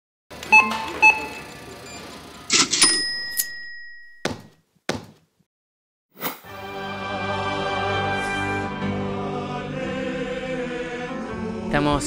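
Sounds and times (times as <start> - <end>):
cash register rattle: 0.4 - 4.1
cash register dings: 0.4 - 4.5
bell ringing: 2.5 - 4.5.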